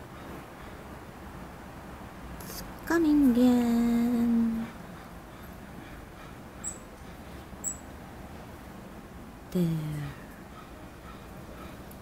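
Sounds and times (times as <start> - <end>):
low background noise: 0.0 - 12.0
chickadee high-pitched calls: 6.2 - 7.9.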